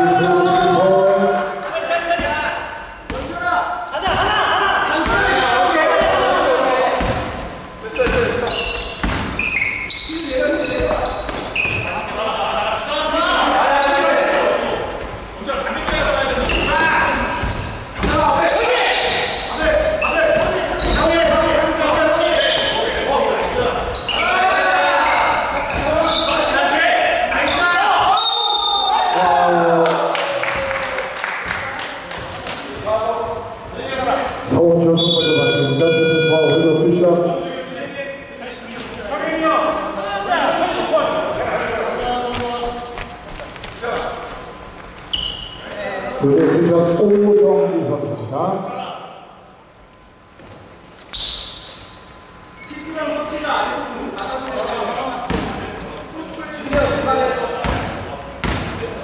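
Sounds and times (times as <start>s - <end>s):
players' voices and calls: 0.0s - 59.0s.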